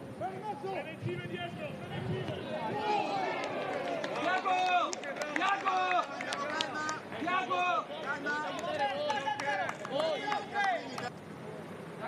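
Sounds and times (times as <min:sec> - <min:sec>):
people shouting and calling out: 0:00.1 - 0:11.1.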